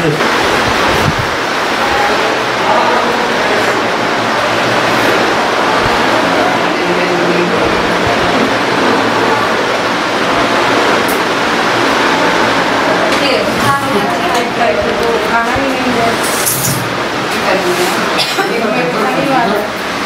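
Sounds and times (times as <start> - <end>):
busy room background noise: 0.0 - 20.0
faint indistinct voices: 1.4 - 20.0.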